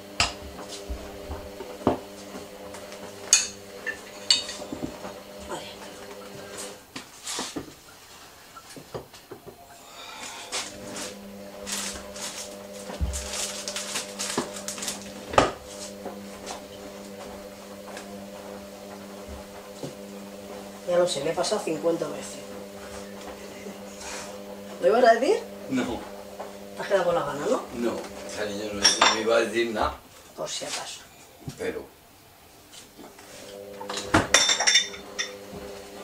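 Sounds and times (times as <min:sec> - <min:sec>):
steady low hum: 0:09.6 - 0:29.6.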